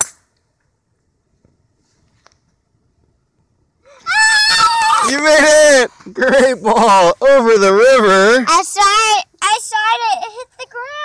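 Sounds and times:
child shouting: 0:04.0 - 0:05.6, 0:08.2 - 0:11.0.

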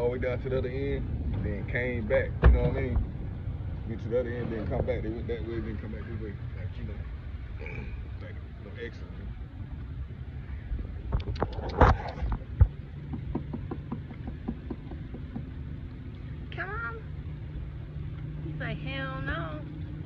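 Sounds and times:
steady low hum: 0:00.0 - 0:20.0
sharp knocks: 0:11.1 - 0:15.7
boat motor idling: 0:11.9 - 0:20.0.

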